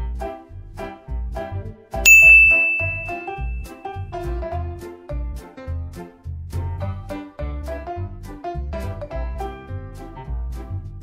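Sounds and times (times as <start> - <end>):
loud ding sound effect: 2.1 - 3.7.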